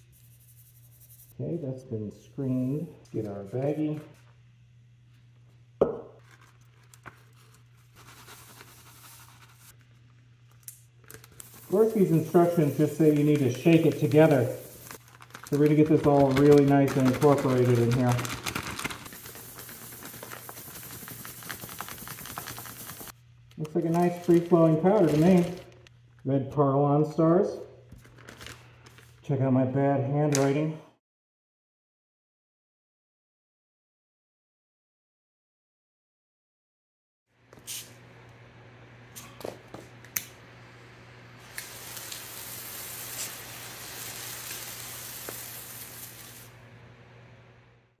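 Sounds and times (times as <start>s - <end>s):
plastic bag crinkling: 11.0s - 25.9s, 28.0s - 29.2s
firework star hissing: 11.4s - 15.0s, 19.1s - 23.1s, 41.4s - 46.6s.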